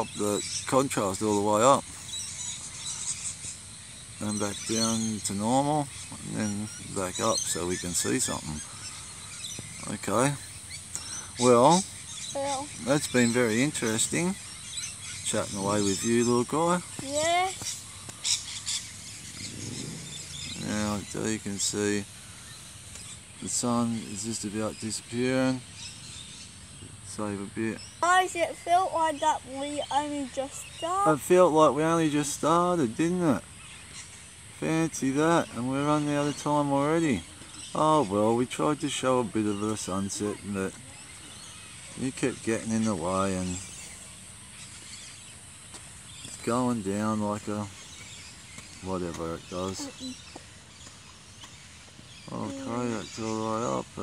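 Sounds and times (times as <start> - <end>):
high bird chirps: 0.0 - 45.4, 46.0 - 53.9
faint outdoor background noise: 0.0 - 54.0.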